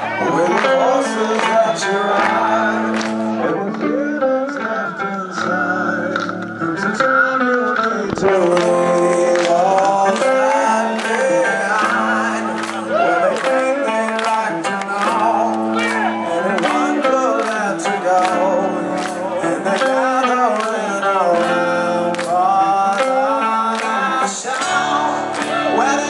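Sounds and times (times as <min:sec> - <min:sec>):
distorted electric guitar chords: 0:00.0 - 0:26.0
male singer singing: 0:00.0 - 0:26.0.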